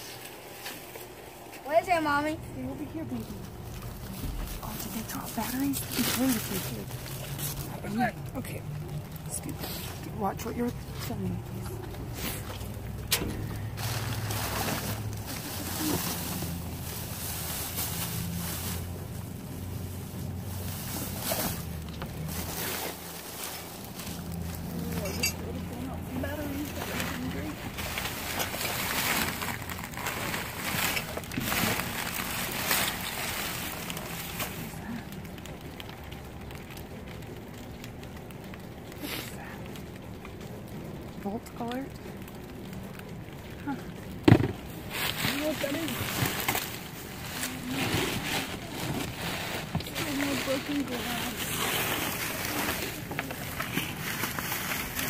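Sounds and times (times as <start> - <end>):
plastic and cardboard rustling: 0.0 - 55.0.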